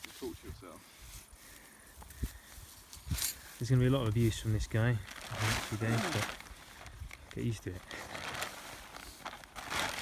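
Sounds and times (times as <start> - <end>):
fabric rustling and crinkling: 4.0 - 10.0.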